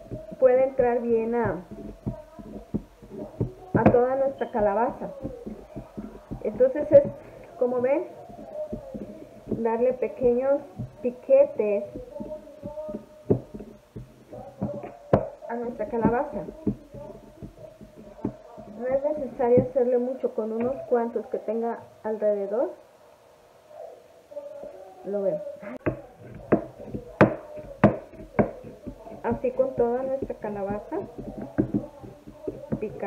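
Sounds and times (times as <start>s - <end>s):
skewer tapping into pumpkin: 0.0s - 19.8s, 25.8s - 33.0s.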